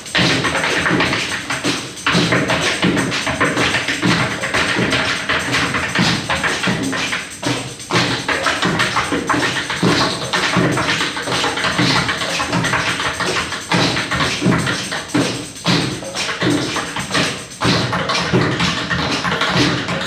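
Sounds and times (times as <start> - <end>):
hand drums playing: 0.0 - 20.0.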